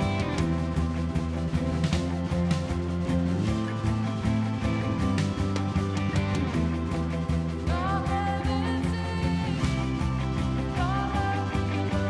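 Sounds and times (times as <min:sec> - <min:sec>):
drum beats: 0:00.0 - 0:12.0
woman singing: 0:07.7 - 0:12.0.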